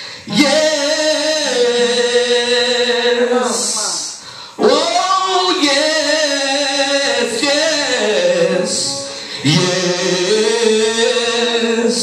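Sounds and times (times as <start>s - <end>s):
man singing a long held note: 4.6s - 12.0s.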